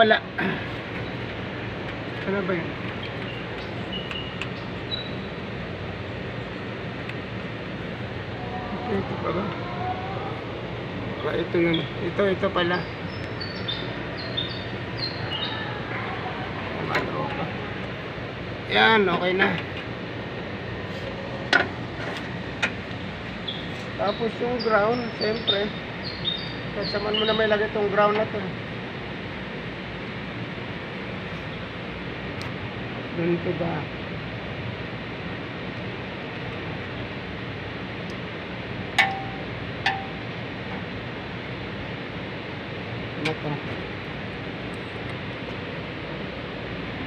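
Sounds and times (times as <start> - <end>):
steady rushing noise: 0.0 - 26.0
steady background noise: 0.0 - 47.0.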